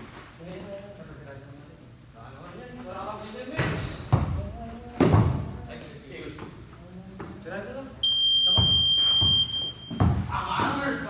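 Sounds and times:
basketball thuds: 0:08.6 - 0:10.4.

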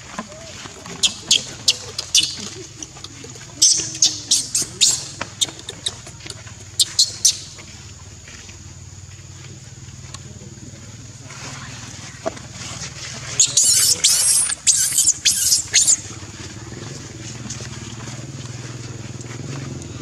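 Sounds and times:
baby monkey squealing: 0:01.0 - 0:02.6, 0:03.6 - 0:07.5, 0:13.4 - 0:16.1.

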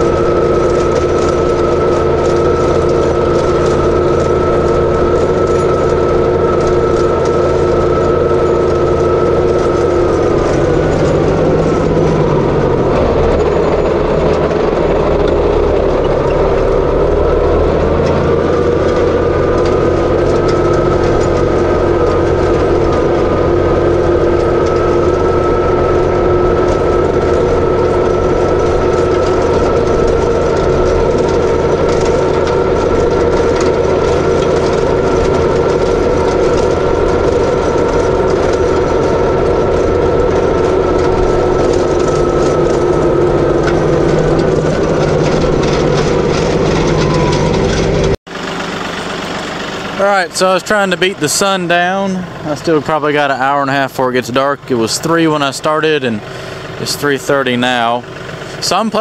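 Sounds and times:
tractor engine under load: 0:00.0 - 0:59.0.

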